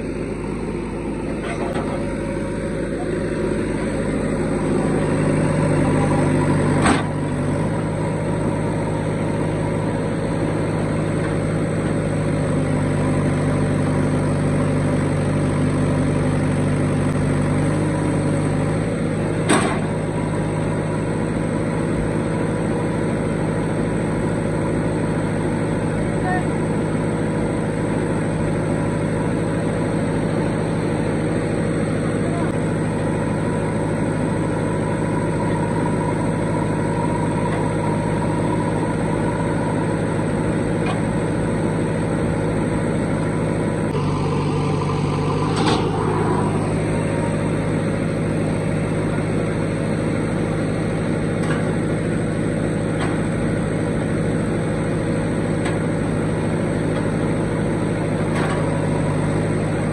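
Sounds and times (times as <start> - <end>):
diesel engine running: 0.0 - 59.9.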